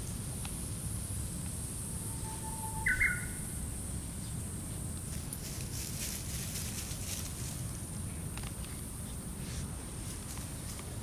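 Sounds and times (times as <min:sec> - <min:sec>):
puppies rustling over dry leaves: 0:05.1 - 0:11.0.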